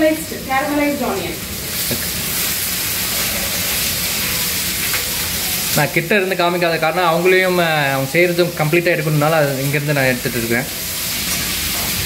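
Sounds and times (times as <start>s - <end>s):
onions sizzling in oil: 0.0s - 12.0s.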